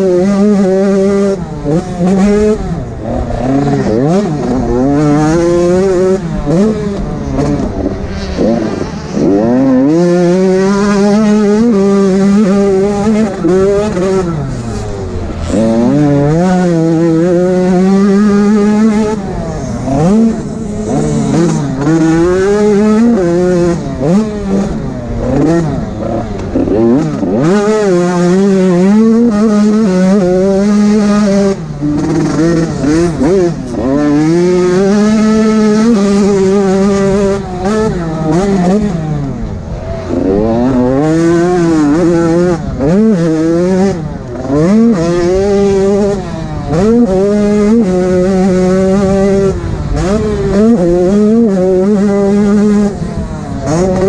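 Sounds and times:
motocross bike engine racing: 0.0s - 54.0s.

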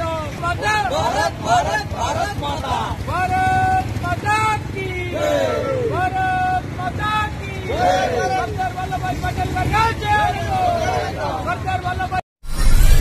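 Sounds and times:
group chanting call and response: 0.4s - 11.6s.

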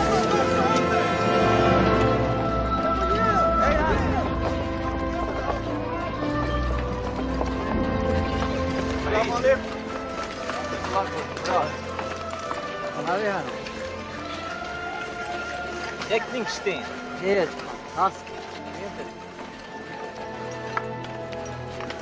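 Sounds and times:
voices calling out: 0.0s - 21.0s
crowd bustle: 0.0s - 22.0s
film score with held notes: 0.0s - 22.0s.

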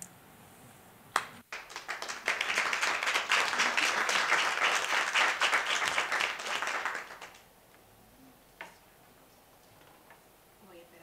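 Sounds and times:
audience applauding: 1.2s - 7.5s.

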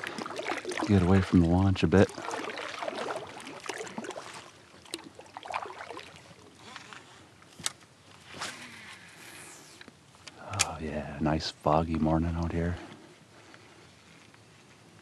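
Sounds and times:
water washing along kayak hull: 0.0s - 7.3s.

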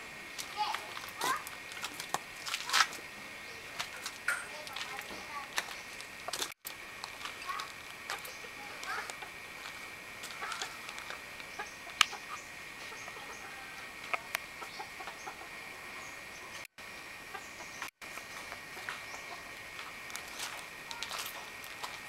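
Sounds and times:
steady high-pitched hum: 0.0s - 22.0s.

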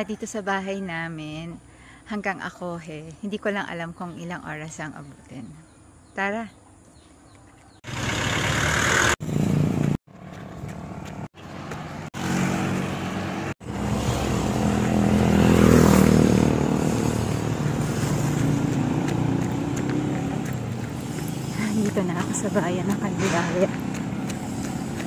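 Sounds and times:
vehicle engine passing: 7.8s - 25.0s.

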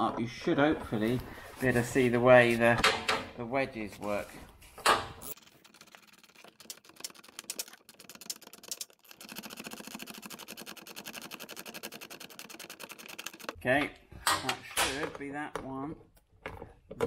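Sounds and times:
ratchet clicking: 6.9s - 13.6s.

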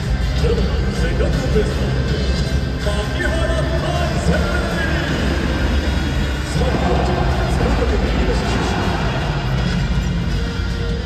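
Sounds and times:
loud stadium music: 0.0s - 11.0s
announcer over public address: 0.3s - 5.7s.

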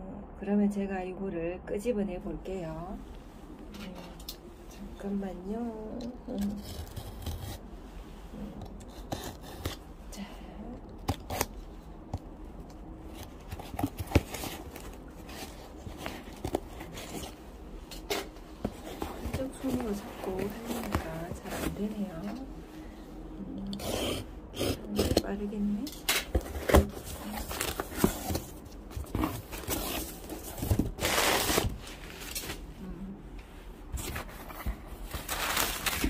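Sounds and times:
knife cutting tape and cardboard: 8.8s - 9.8s, 23.7s - 25.3s.

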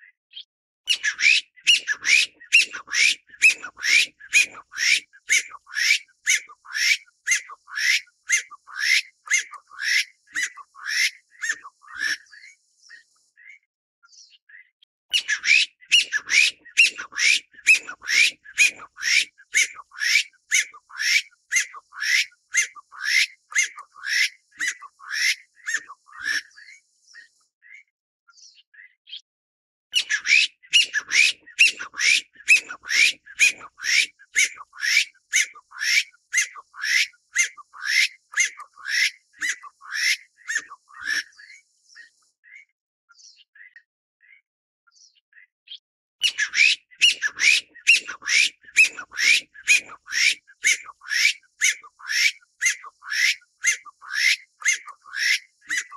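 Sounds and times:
partridge calling shrill notes: 0.9s - 12.5s, 15.1s - 26.8s, 30.0s - 41.6s, 46.2s - 55.9s.

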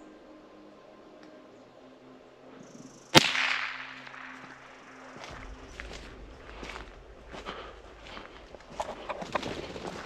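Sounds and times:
rifle shot: 3.2s - 4.7s.

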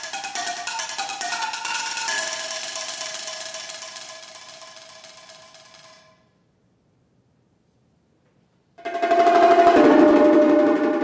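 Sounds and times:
percussion bars struck with mallets: 0.0s - 6.3s, 8.8s - 11.0s.

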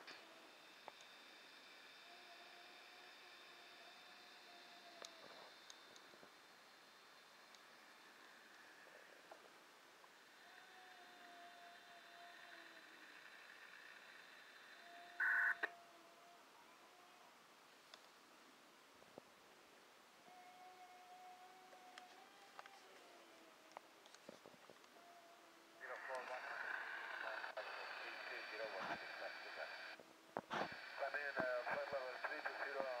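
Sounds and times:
radio scanner hiss: 0.0s - 9.5s, 11.8s - 15.7s, 25.8s - 33.0s
faint high-pitched whine: 0.0s - 33.0s
faint steady tones: 0.0s - 33.0s
click: 5.0s - 6.0s, 17.9s - 18.1s, 23.7s - 24.2s
voice through radio scanner speaker: 15.1s - 15.7s, 25.8s - 30.0s, 30.6s - 33.0s.

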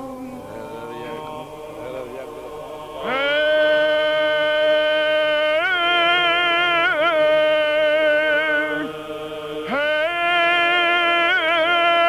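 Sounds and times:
low vocal drone: 0.0s - 12.0s
man chanting: 0.1s - 12.0s.

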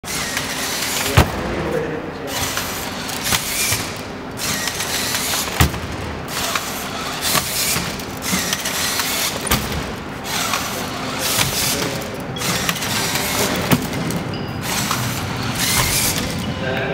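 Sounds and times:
din of voices in a hall: 0.8s - 5.5s, 10.0s - 16.9s
walking robot stepping: 2.3s - 16.6s.

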